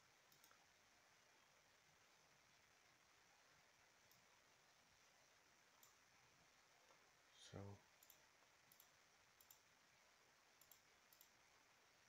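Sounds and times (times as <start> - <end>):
computer mouse clicks: 0.2 - 0.7, 4.0 - 4.3, 5.7 - 6.0, 8.0 - 9.7, 10.5 - 11.4.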